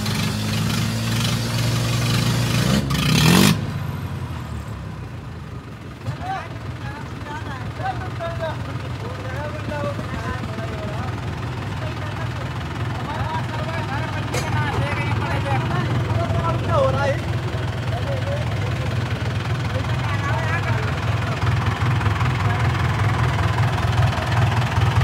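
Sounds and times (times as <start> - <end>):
tractor diesel engine running: 0.0 - 25.0.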